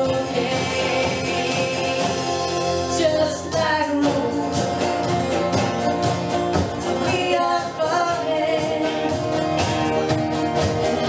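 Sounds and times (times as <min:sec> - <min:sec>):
woman singing: 0:00.0 - 0:05.0, 0:06.8 - 0:09.7
acoustic guitar: 0:00.0 - 0:11.0
bass guitar: 0:00.0 - 0:11.0
electric guitar: 0:00.0 - 0:11.0.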